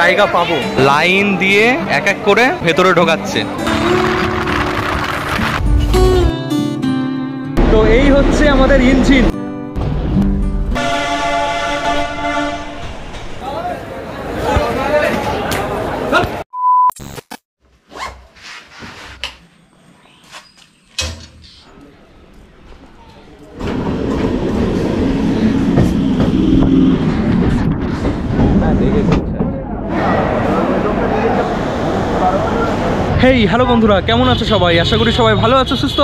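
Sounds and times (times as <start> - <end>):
locomotive horn: 10.8 - 12.9
train running: 22.7 - 32.9.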